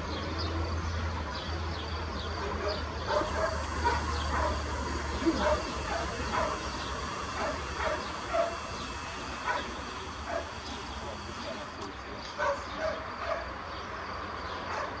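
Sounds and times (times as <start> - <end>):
dog barking: 2.4 - 4.7, 5.3 - 6.7, 7.3 - 8.7, 9.4 - 10.6, 12.4 - 13.6, 14.7 - 15.0.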